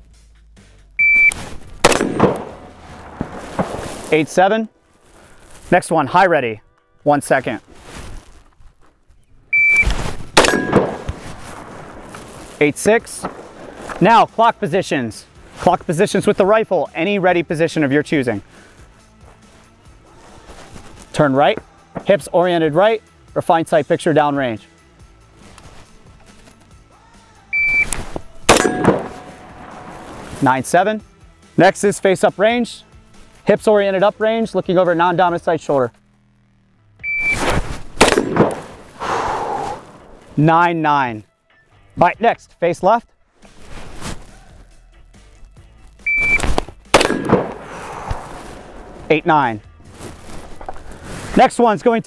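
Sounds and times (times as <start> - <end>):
shot timer beep: 1.0 - 1.4, 9.5 - 11.0, 27.6 - 28.0, 37.0 - 37.4, 46.1 - 46.5
rifle gunshot with ringing tail: 1.8 - 4.2, 10.4 - 12.0, 13.2 - 13.9, 28.5 - 30.4, 38.0 - 39.0, 46.9 - 48.4.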